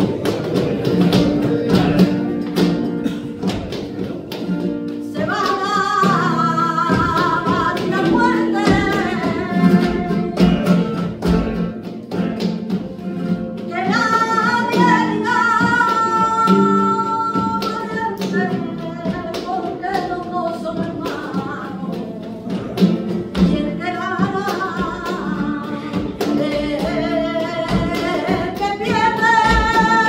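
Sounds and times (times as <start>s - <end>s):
acoustic guitar playing: 0.0s - 30.0s
rhythmic hand clapping: 0.0s - 30.0s
person singing: 5.1s - 11.1s.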